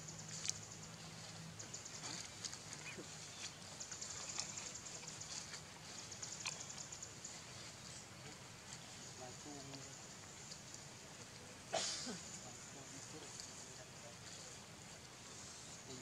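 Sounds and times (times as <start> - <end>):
insects chirring: 0.0 - 16.0
low steady hum: 0.0 - 16.0.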